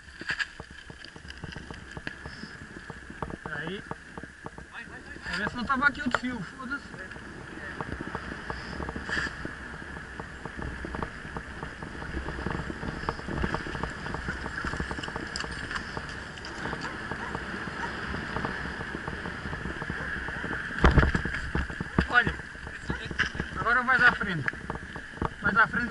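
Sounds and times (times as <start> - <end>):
bike rattling: 0.0 - 25.9
bike rolling on pavement: 0.0 - 25.9.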